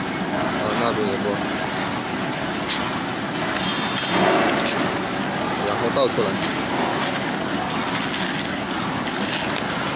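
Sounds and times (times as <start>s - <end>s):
cartoning machine running: 0.0s - 9.9s.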